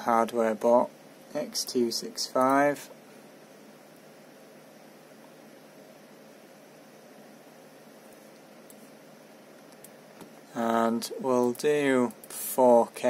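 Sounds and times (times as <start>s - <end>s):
computer fan hiss: 0.0s - 13.0s.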